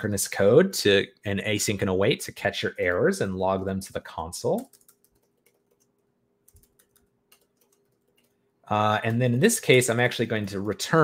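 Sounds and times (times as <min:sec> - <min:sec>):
keyboard keystrokes: 0:06.5 - 0:08.4.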